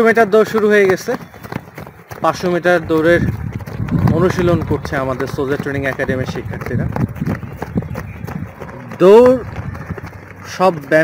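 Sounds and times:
runners' footfalls on dirt: 0:00.0 - 0:11.0.

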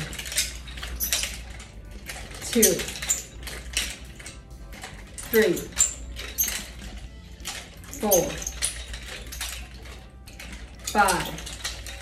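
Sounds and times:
nunchuck chain clicking and rattling: 0:00.0 - 0:12.0.

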